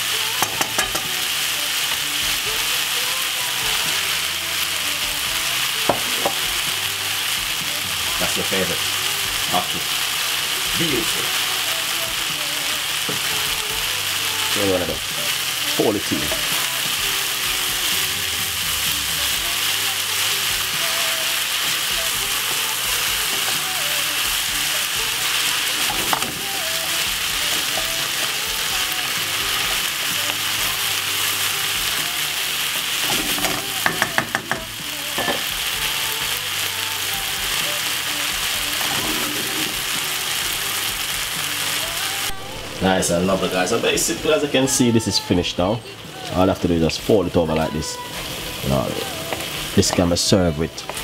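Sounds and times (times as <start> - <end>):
food sizzling in a wok: 0.0 - 51.0.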